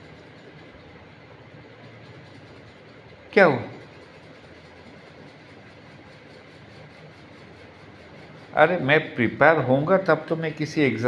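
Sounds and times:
faint hum: 0:00.0 - 0:11.0.

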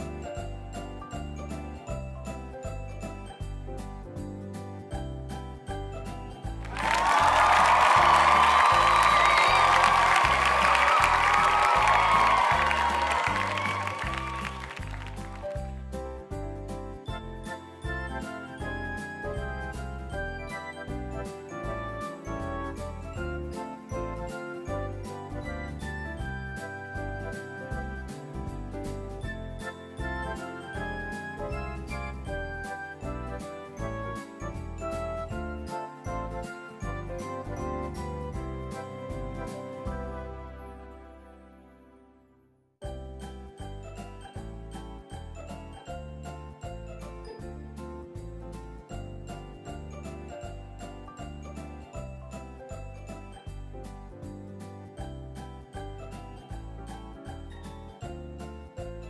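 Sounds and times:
background music with steady beat: 0:00.0 - 0:40.3
crowd applause and cheering: 0:06.5 - 0:16.0.

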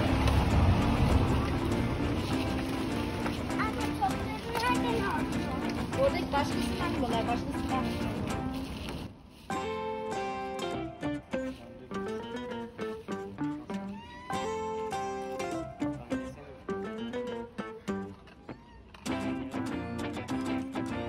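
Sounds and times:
plucked acoustic guitar melody: 0:00.0 - 0:18.3, 0:19.0 - 0:21.0.

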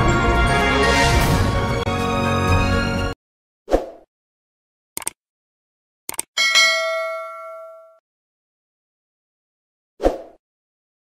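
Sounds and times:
notification bell ding: 0:06.4 - 0:08.0.

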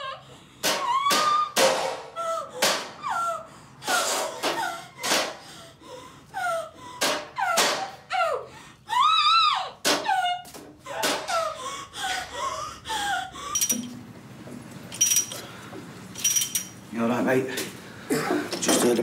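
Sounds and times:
woman's muffled cries and whimpers: 0:00.0 - 0:13.7.

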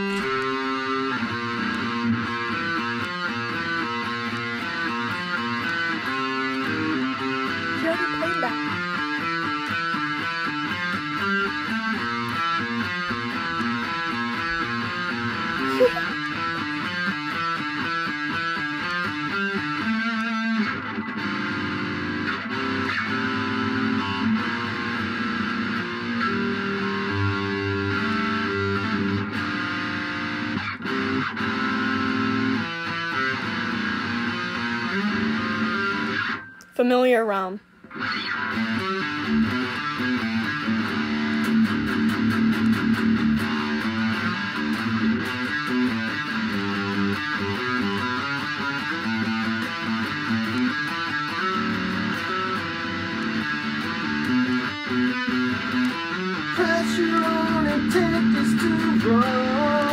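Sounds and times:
electric guitar riff: 0:00.0 - 0:59.9.

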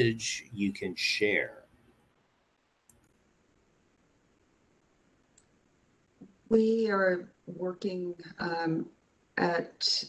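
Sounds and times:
faint clicks: 0:02.8 - 0:03.2, 0:05.3 - 0:05.5.

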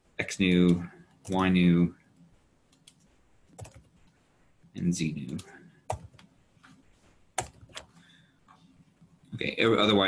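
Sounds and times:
computer keyboard keystrokes: 0:02.7 - 0:03.9, 0:07.4 - 0:07.9.

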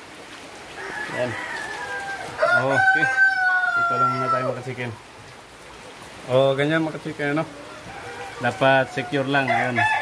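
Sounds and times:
heavy rain: 0:00.0 - 0:10.0
rooster crowing: 0:00.8 - 0:04.7, 0:07.5 - 0:10.0.

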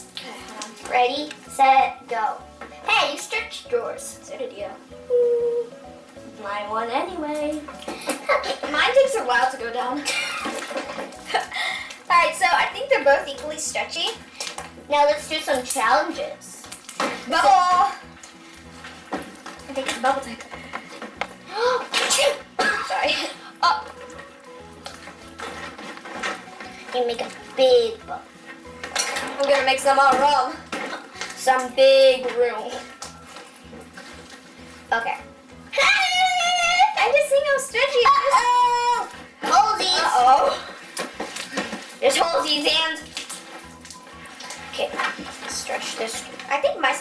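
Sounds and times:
slime squishing: 0:13.1 - 0:22.6, 0:23.6 - 0:35.0, 0:39.1 - 0:47.0
child sneezing: 0:21.5 - 0:23.8.

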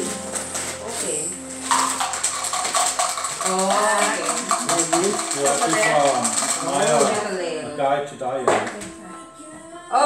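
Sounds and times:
dice rattling on a table: 0:01.7 - 0:07.2.

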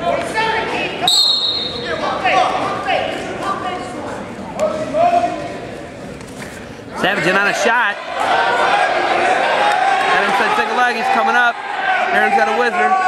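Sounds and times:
referee whistle blast: 0:01.1 - 0:02.0
people shouting in a hall: 0:07.2 - 0:13.0.

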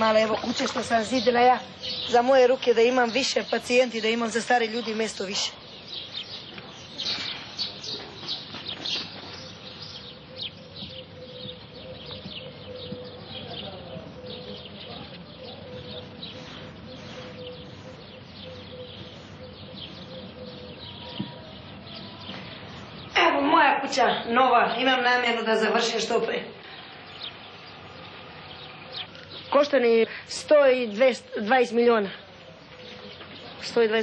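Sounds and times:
small birds chirping: 0:00.0 - 0:34.0.

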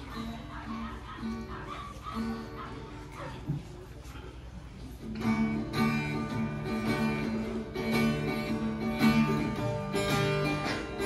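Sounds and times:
acoustic guitar: 0:00.0 - 0:11.0.

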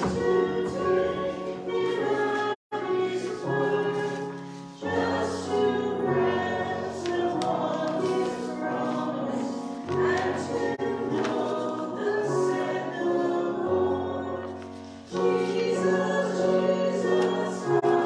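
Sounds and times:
choir singing sustained chords: 0:00.0 - 0:18.0.

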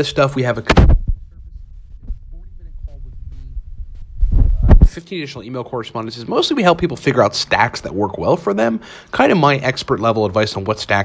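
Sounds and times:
man speaking: 0:00.0 - 0:00.7, 0:01.3 - 0:03.6, 0:04.7 - 0:11.0
low rumbling hum: 0:00.8 - 0:05.0.

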